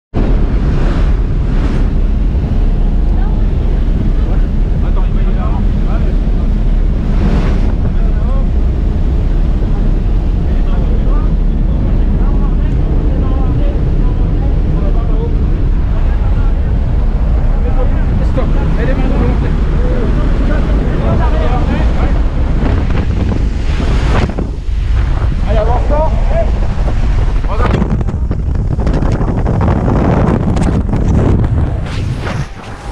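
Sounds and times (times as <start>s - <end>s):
wind buffeting microphone: 0.1s - 32.9s
plane engine drone: 0.2s - 32.9s
rushing air: 0.2s - 32.9s.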